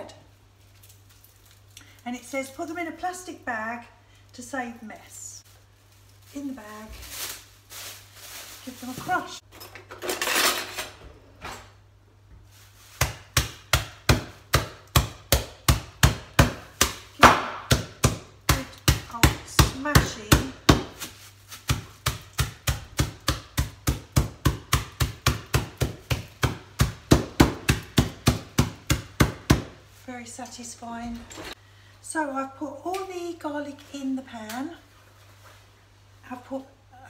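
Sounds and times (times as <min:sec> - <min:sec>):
mallet pounding garlic: 0:13.0 - 0:29.8.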